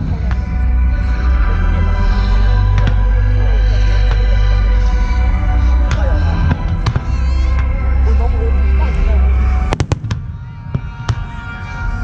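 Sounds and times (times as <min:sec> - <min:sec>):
loud music with heavy bass: 0:00.0 - 0:09.8
fireworks bangs: 0:09.6 - 0:11.9.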